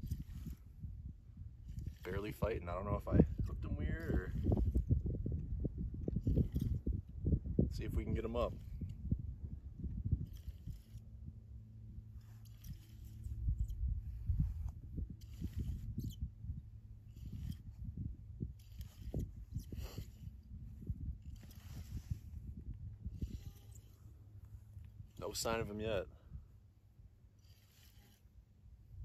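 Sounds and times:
fishing reel rustles and scrapes: 0.0 - 0.8, 1.6 - 5.0, 6.2 - 6.9, 10.2 - 11.1, 12.1 - 16.3, 17.0 - 26.0, 27.4 - 28.4
steady low rumble: 0.0 - 27.5.

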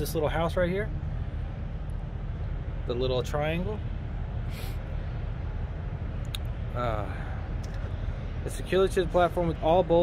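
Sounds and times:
low vehicle rumble: 0.0 - 10.0
brief hiss: 4.4 - 4.9.

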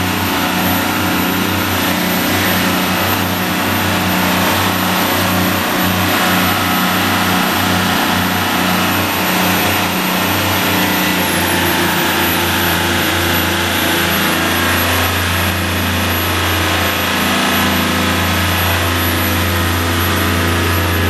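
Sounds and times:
boat diesel engine running: 0.0 - 21.0.

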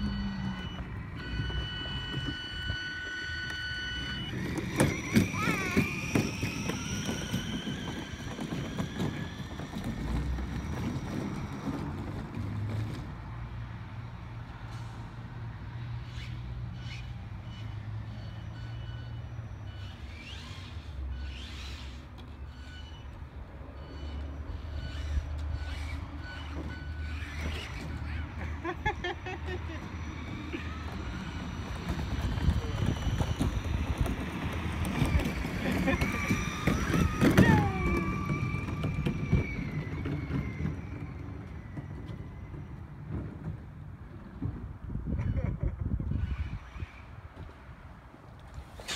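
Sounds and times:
electric motor whine: 0.0 - 10.7.

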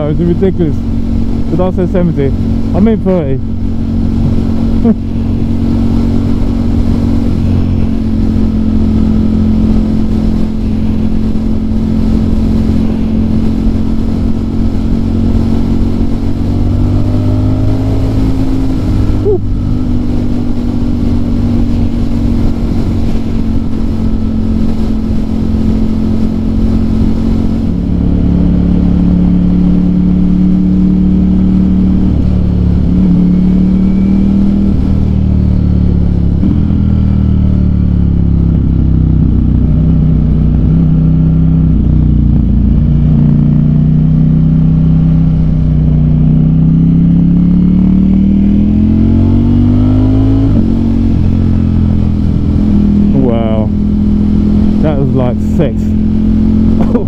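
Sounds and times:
motorcycle engine: 0.0 - 57.0
wind noise on microphone: 3.8 - 30.7.

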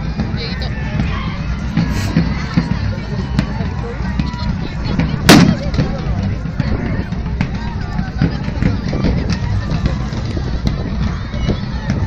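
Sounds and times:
crowd chatter: 0.0 - 12.0
loud shot-like bang: 5.3 - 5.6.

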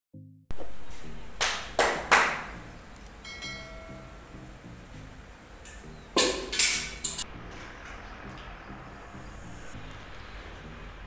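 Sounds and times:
short ringing chime: 3.2 - 4.5.

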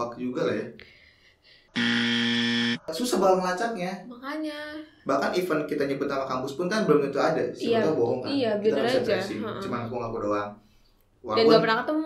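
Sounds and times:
low censor buzzer tone: 1.8 - 2.8.

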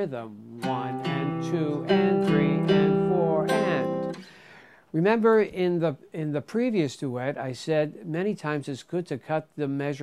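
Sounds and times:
jazz guitar picked: 0.5 - 4.2.

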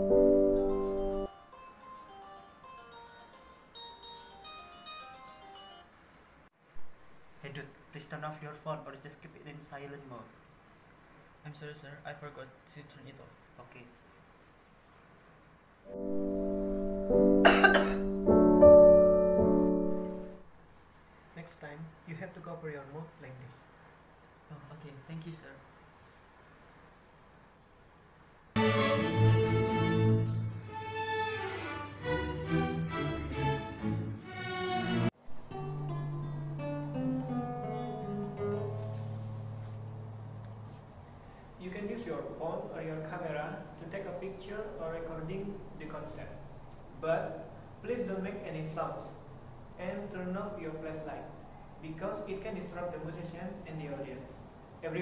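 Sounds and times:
mobile phone ringtone melody: 0.0 - 1.3, 15.9 - 17.4
symphony orchestra playing: 15.9 - 17.4, 28.6 - 35.1
bowed strings: 28.6 - 35.1.

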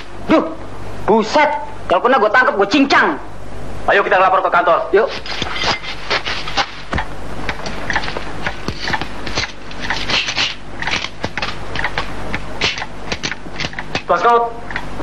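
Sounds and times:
film soundtrack hiss: 0.0 - 15.0.

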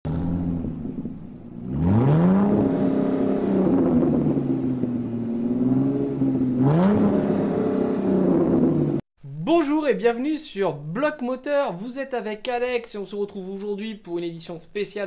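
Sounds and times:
car engine revving: 0.1 - 9.0.

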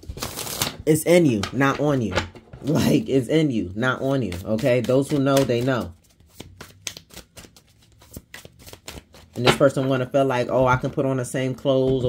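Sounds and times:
cards being shuffled: 3.7 - 10.1.

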